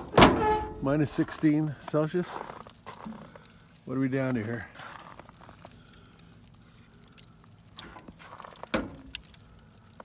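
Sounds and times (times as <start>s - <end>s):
burning charcoal crackling and popping: 0.0s - 10.0s.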